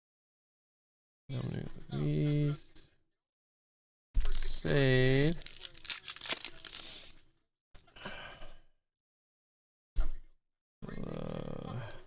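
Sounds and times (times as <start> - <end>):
foil pack tearing and crinkling: 4.2 - 7.1.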